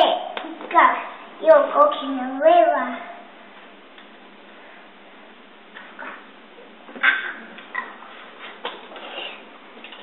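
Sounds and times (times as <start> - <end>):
steady low hiss: 0.0 - 10.0.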